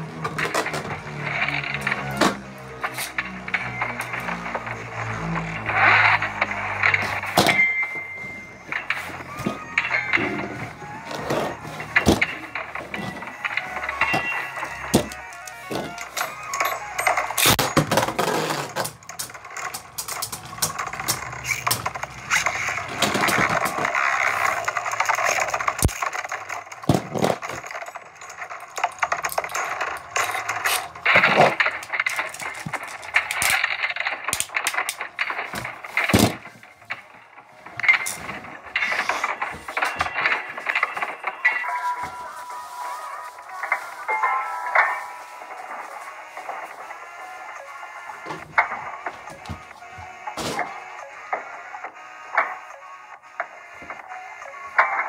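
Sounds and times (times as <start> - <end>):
plastic and metal clacks: 0.2 - 4.8, 11.1 - 41.6.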